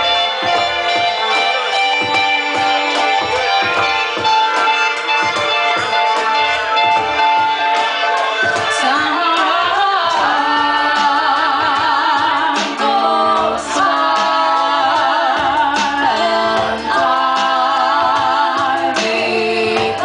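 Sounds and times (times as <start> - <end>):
instrumental backing: 0.0 - 20.0
women singing in harmony: 8.5 - 20.0.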